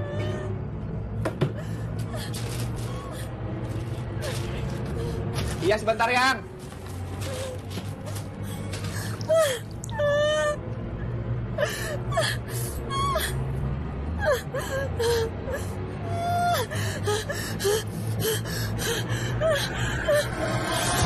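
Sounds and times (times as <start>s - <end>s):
low droning film score: 0.0s - 21.0s.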